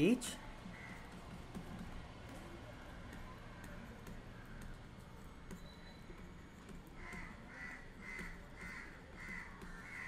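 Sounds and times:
crow cawing: 0.7s - 1.1s, 7.0s - 10.0s.

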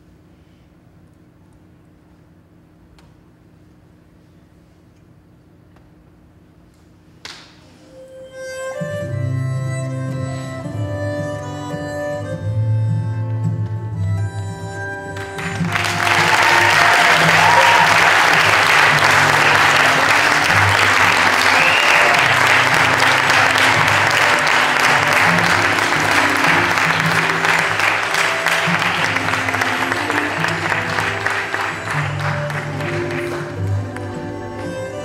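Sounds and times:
audience applauding: 15.1s - 34.2s.

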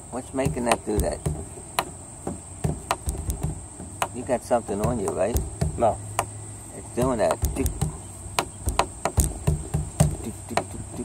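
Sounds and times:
sharp clicks: 7.0s - 9.3s.

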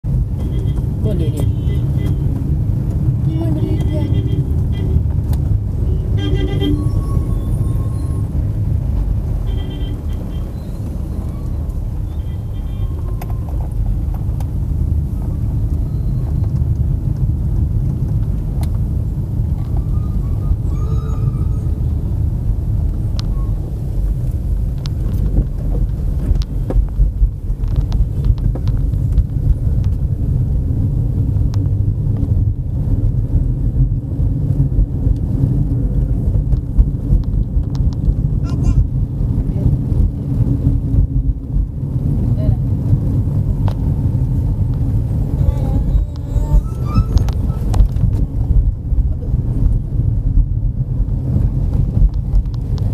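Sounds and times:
car engine and tyre noise: 0.0s - 52.9s.

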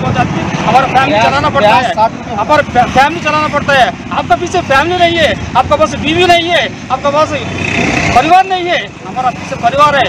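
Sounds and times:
man speaking in a raised voice: 0.0s - 10.0s.

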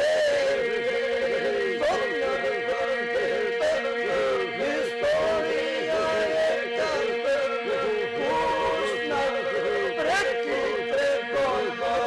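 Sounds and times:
male voices holding a drone: 0.0s - 12.0s
solo voices singing ornamented melody: 0.0s - 12.0s.

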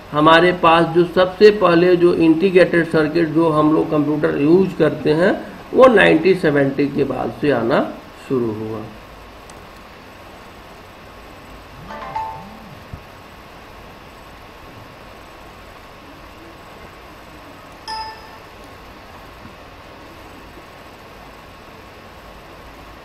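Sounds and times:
faint hum: 0.0s - 23.0s
short ringing tone: 11.8s - 12.9s, 17.9s - 18.6s
brief pitched sound: 11.8s - 13.0s.

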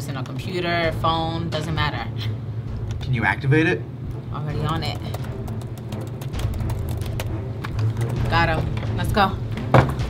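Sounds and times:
film score music: 0.0s - 10.0s
laptop keyboard typing: 4.5s - 8.5s.

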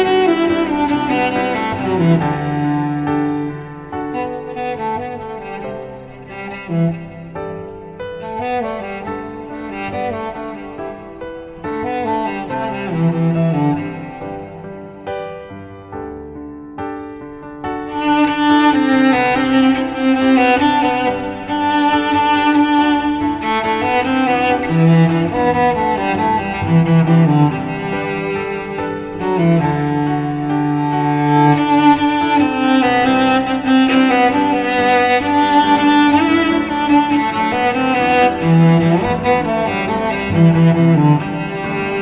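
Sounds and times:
bowed cello melody: 0.0s - 42.0s.

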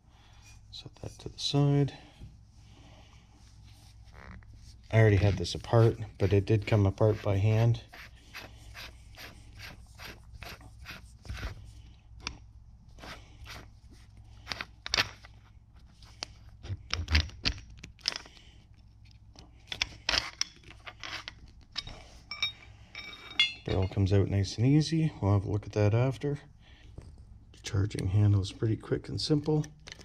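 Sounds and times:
low steady hum: 0.0s - 30.0s
metal clicks and scrapes: 14.4s - 15.4s, 19.6s - 24.0s.

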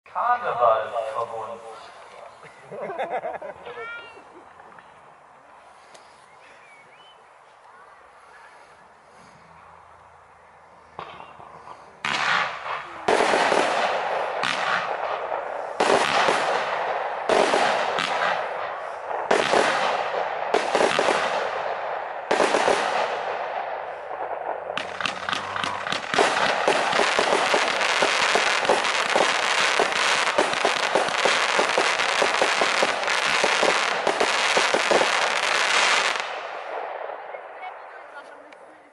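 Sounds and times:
firework cake shots: 11.0s - 23.4s, 24.1s - 37.3s.

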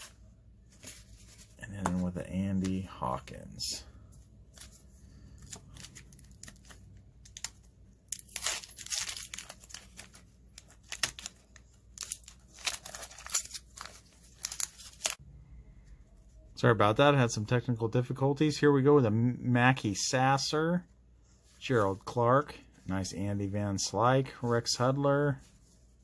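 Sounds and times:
wax paper tearing and crinkling: 8.1s - 10.2s, 12.0s - 15.2s.

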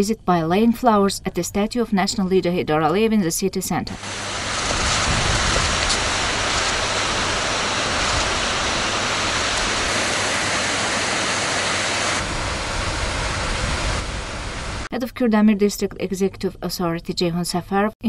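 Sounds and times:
fountain water splashing: 4.0s - 14.9s.

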